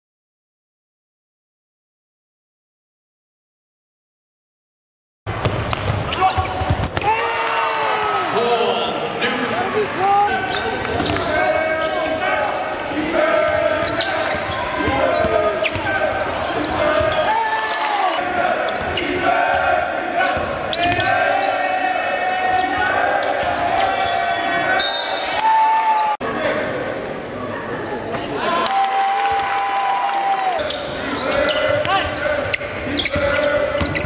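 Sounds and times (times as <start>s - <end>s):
basketball bouncing on court: 5.3s - 7.2s, 10.5s - 11.4s
spectators shouting: 6.1s - 26.2s.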